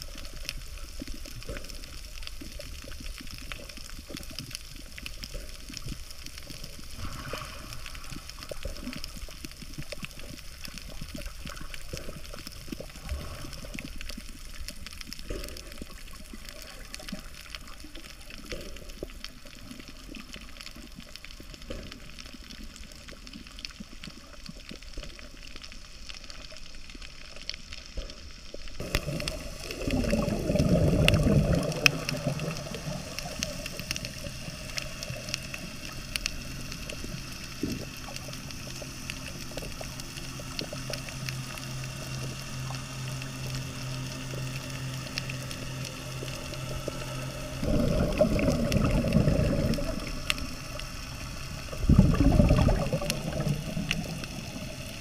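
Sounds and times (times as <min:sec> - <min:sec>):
steady low hum: 0:00.0 - 0:23.2, 0:28.1 - 0:55.0
bubbling gurgling rushes: 0:00.0 - 0:26.0, 0:28.7 - 0:55.0
muffled underwater wash: 0:00.0 - 0:55.0.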